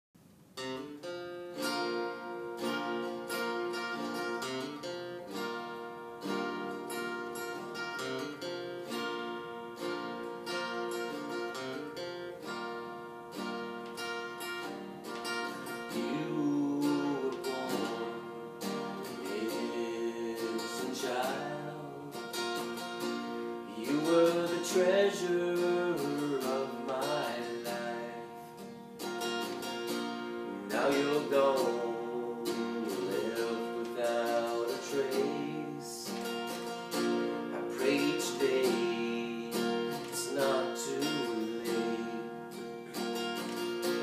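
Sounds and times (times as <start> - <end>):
acoustic guitar strumming chords: 0.2 - 44.0.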